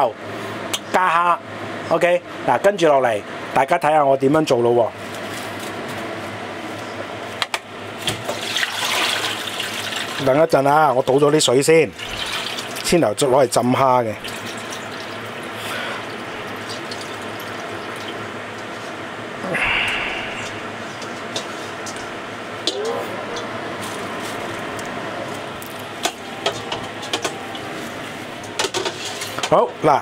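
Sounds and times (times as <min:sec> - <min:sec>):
water pouring into metal sink: 0:08.3 - 0:10.2, 0:12.0 - 0:12.9, 0:14.1 - 0:15.5, 0:16.1 - 0:18.2.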